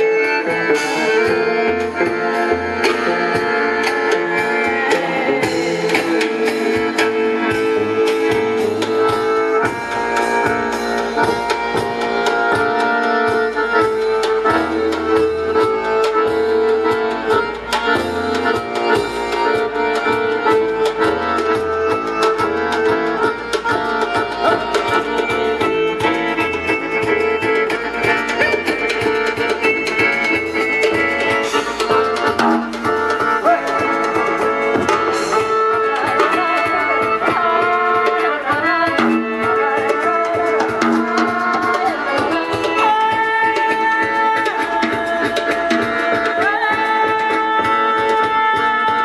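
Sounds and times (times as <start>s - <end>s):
double bass: 0.0s - 37.6s
accordion: 0.0s - 49.0s
hand drums and percussion: 0.0s - 49.0s.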